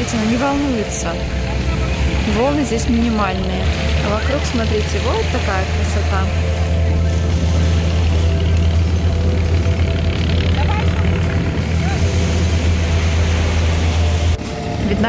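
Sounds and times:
surf: 0:00.0 - 0:15.0.

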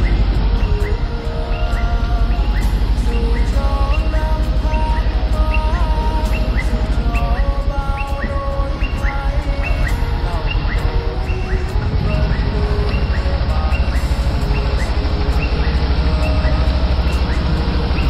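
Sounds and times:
melody of held sliding notes: 0:00.0 - 0:18.0.

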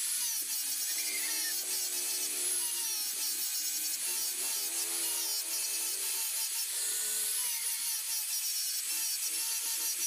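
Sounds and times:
angle grinder whining: 0:00.0 - 0:10.0
sanding disc rubbing on wood: 0:00.0 - 0:10.0.

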